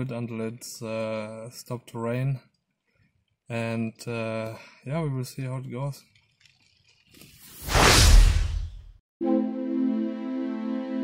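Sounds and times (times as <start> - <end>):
whoosh sound effect: 7.4 - 8.8.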